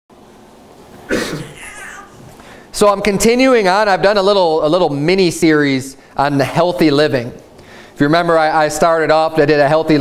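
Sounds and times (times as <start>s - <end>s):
brief vocal sound: 1.1s - 2.3s.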